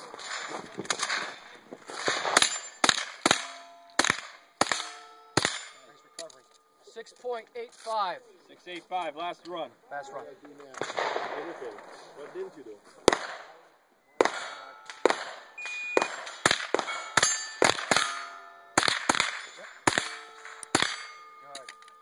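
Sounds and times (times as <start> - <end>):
pistol shots: 0.2 - 5.9, 10.7 - 11.9, 13.0 - 13.6, 14.2 - 21.4
steel targets ringing: 2.2 - 6.8, 14.2 - 22.0.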